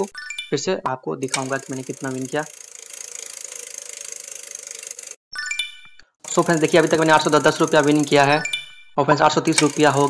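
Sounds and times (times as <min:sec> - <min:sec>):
prize wheel ticking: 0:00.0 - 0:10.0.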